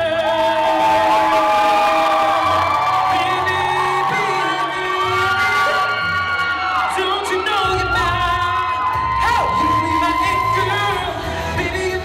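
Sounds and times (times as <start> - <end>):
audience cheering: 0.0 - 11.7
man singing long notes: 0.0 - 12.0
pop backing track: 0.0 - 12.0.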